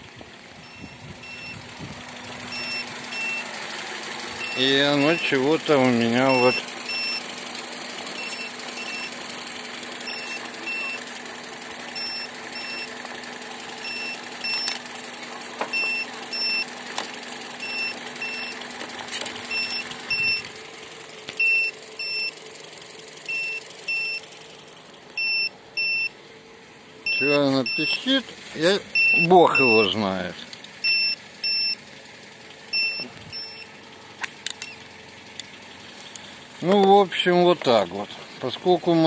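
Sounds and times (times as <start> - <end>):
car engine idling: 0.0 - 39.0
short high-pitched beeps: 0.6 - 1.6, 2.5 - 3.5, 4.4 - 5.4, 6.3 - 7.2, 8.2 - 9.2, 10.0 - 11.0, 12.0 - 12.9, 13.8 - 14.8, 15.7 - 16.7, 19.5 - 20.4, 21.4 - 22.3, 23.3 - 24.2, 25.2 - 26.1, 27.1 - 28.1, 29.0 - 29.9, 30.8 - 31.8, 32.7 - 33.7.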